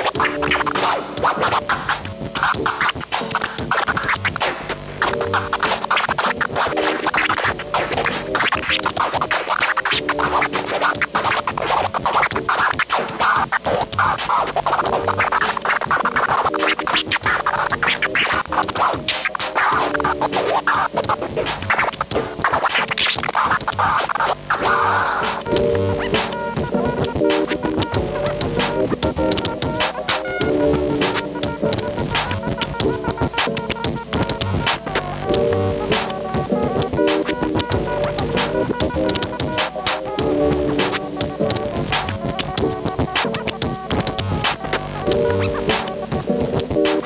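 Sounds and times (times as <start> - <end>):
backing beat with bass: 0.0 - 47.0
music: 0.0 - 47.0
turntable scratching: 0.0 - 47.0.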